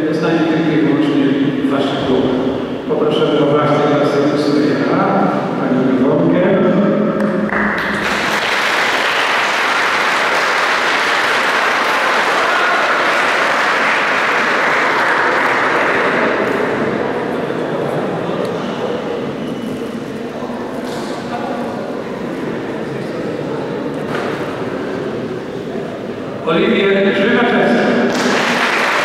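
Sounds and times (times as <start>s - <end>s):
audience applauding: 7.5s - 17.4s, 28.1s - 29.0s.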